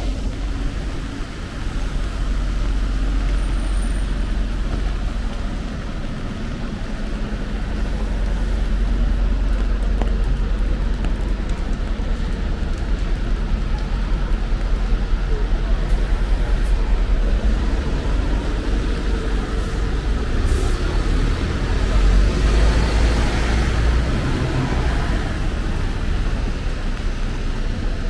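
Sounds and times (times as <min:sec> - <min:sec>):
tyres hissing on wet road: 0:00.0 - 0:28.0
vehicle engines: 0:00.0 - 0:28.0.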